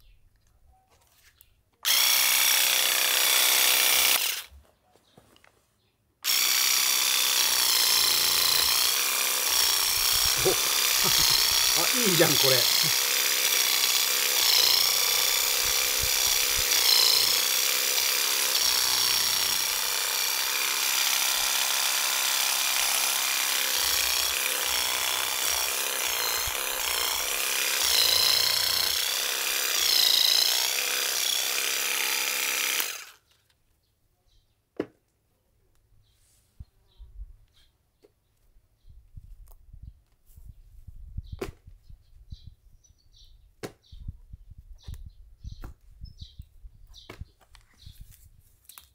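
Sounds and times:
electric weeding vibrator buzzing: 1.8 - 4.5, 6.2 - 33.2.

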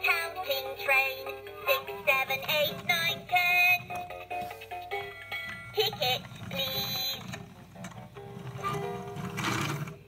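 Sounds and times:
plastic wheels rattling: 2.2 - 4.1, 5.4 - 10.0.

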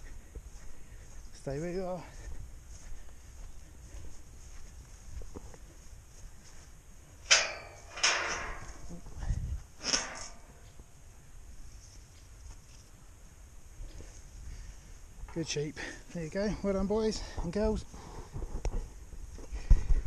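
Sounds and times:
metal gate clanking: 7.2 - 9.0, 9.8 - 10.6.

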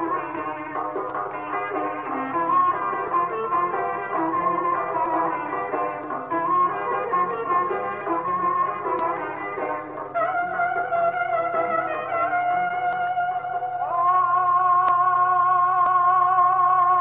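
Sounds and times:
folk music with held melody notes: 0.0 - 17.0.

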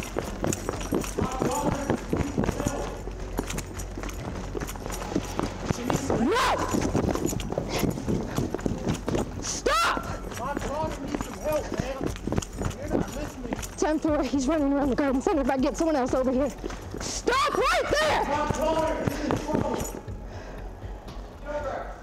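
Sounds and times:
running footfalls: 0.0 - 21.3
people shouting: 6.0 - 7.0, 9.4 - 10.8, 17.0 - 19.8.

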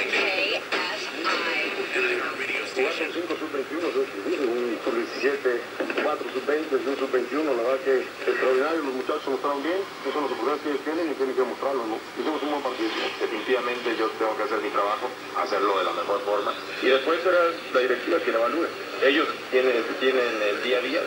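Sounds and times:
thin am radio voice: 0.0 - 21.0.

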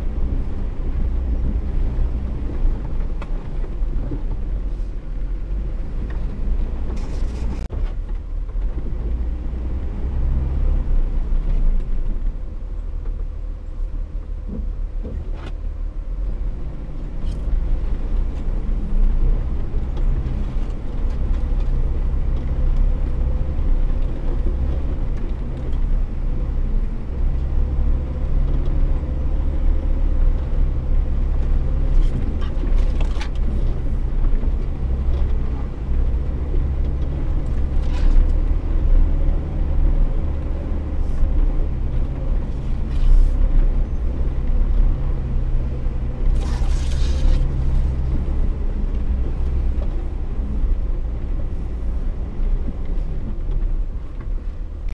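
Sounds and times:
low engine rumble: 0.0 - 54.9.

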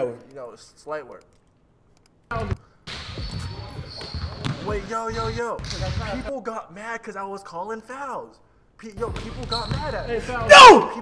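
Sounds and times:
basketball bouncing on court: 2.4 - 6.3, 9.0 - 10.6.

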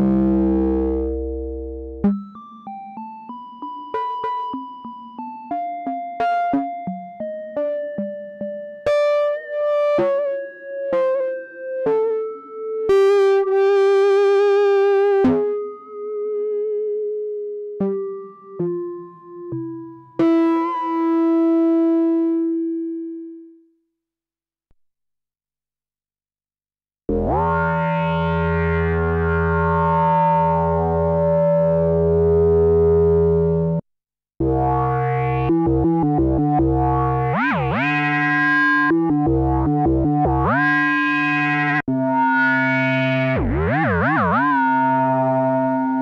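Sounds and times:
synthesizer sustained note wobbling: 27.1 - 33.0, 34.4 - 46.0.

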